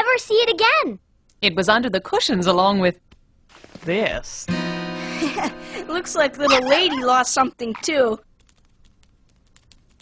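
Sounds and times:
dog paws clicking on floor: 7.6 - 10.0.

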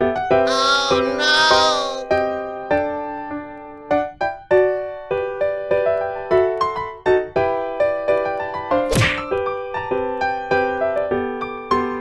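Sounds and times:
sharp whack: 8.9 - 9.4.

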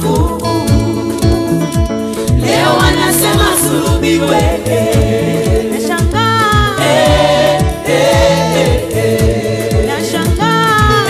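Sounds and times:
choir singing gospel: 0.0 - 1.3, 2.1 - 11.0
bass: 0.0 - 11.0
deep regular drum beat: 0.0 - 11.0.

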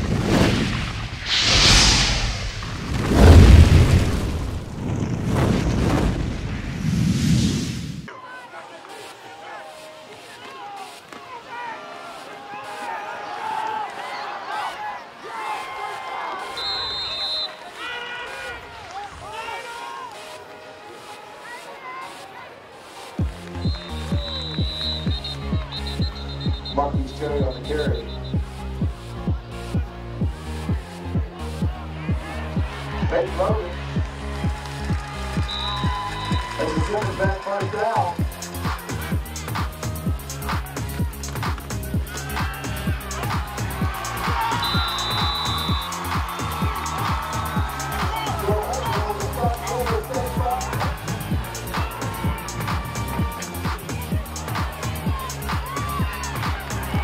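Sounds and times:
deep booms and rushing swells: 0.0 - 8.1
music with heavy beat: 38.1 - 57.0
voices: 46.8 - 57.0.

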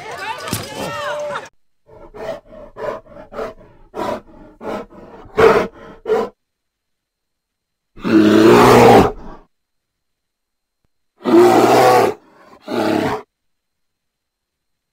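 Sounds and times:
bear grunts: 1.9 - 6.3
bear roar: 1.9 - 6.4, 8.0 - 9.5, 11.2 - 13.3.

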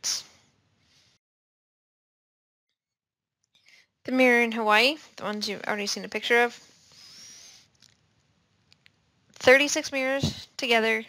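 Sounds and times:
faint hiss: 6.6 - 7.8.

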